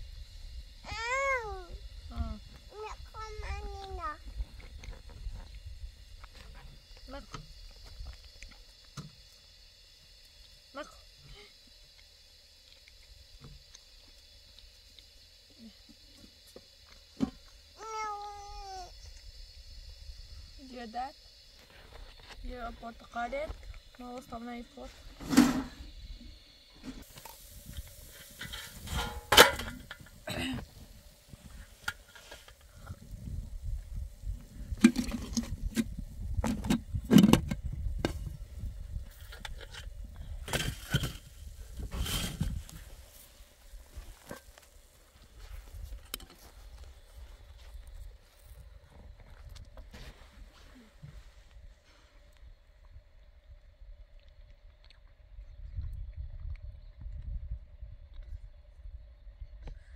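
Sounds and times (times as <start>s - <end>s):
wind rumble on microphone: 0.0s - 8.5s, 32.6s - 44.4s, 52.4s - 59.9s.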